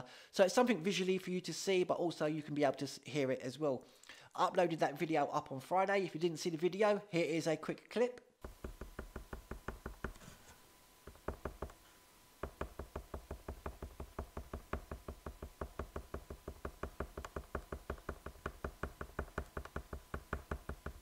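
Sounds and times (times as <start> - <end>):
pen tapping on paper: 8.4 - 10.4, 11.0 - 11.8, 12.4 - 21.0.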